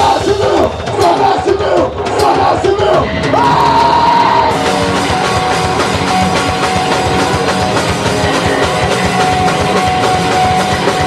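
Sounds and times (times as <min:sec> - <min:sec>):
rhythmic shouted voices: 0:00.0 - 0:07.6
crowd noise: 0:00.0 - 0:11.0
punk band playing live: 0:00.0 - 0:11.0.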